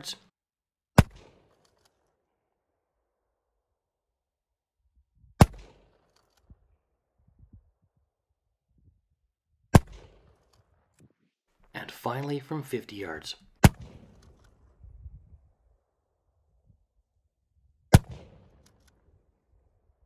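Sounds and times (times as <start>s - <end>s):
shotgun shots: 1.0s - 1.7s, 5.4s - 6.1s, 9.7s - 10.5s, 13.6s - 14.7s, 17.9s - 18.8s.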